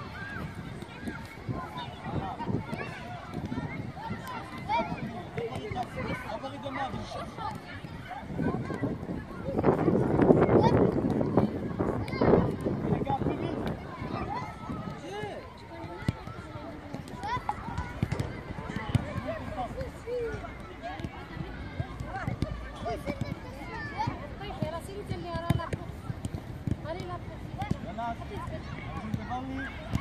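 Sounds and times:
footballs being kicked: 0.0 - 30.0.

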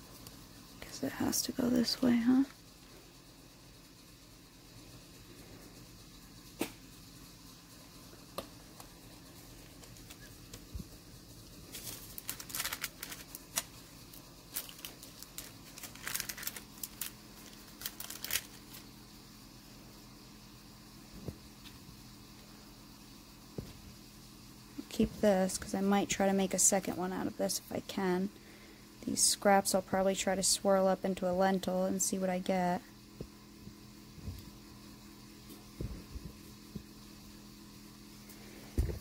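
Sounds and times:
paper crinkling: 11.6 - 18.9.

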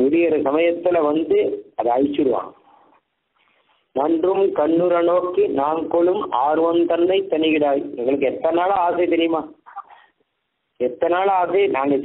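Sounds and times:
man's voice: 0.0 - 2.7, 3.9 - 9.6, 10.8 - 12.0.

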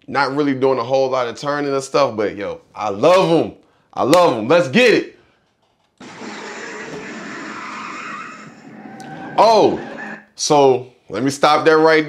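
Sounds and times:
tyres squealing: 6.0 - 10.3.

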